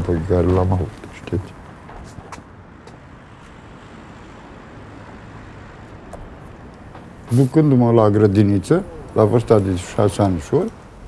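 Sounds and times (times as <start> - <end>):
passing cars hum: 0.0 - 11.0.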